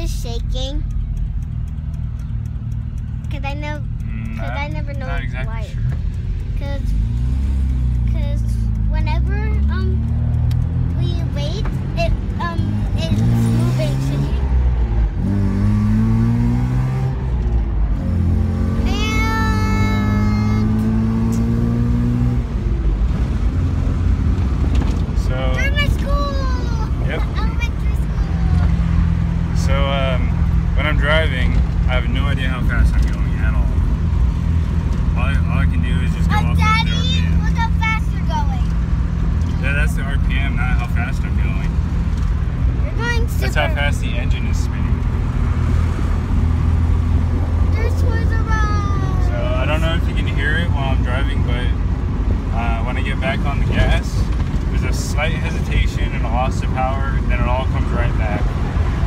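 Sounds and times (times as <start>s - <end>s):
car engine accelerating: 0.0s - 59.0s.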